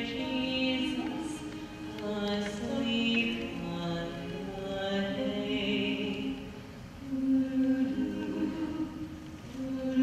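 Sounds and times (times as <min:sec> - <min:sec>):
female vocal group singing: 0:00.0 - 0:06.4, 0:07.0 - 0:10.0.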